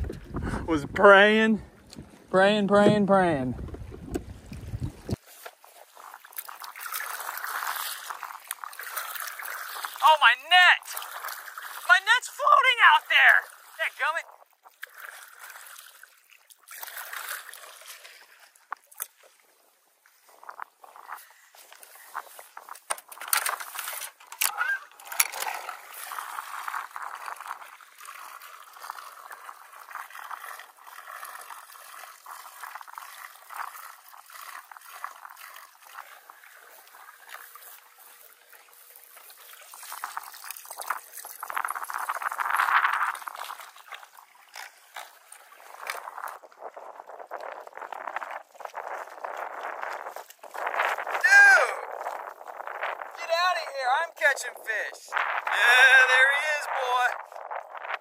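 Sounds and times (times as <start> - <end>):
water sloshing against boat hull: 0.0 - 1.0, 1.6 - 53.2
small splashes: 3.4 - 53.2.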